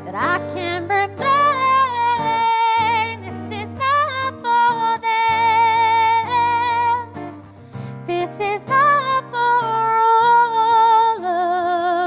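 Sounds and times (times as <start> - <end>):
guitar accompaniment: 0.0 - 12.0
woman singing slow song: 0.0 - 12.0.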